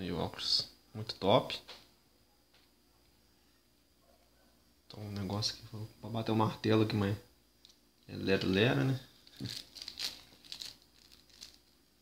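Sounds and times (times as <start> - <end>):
plastic bag crinkling: 9.1 - 11.8.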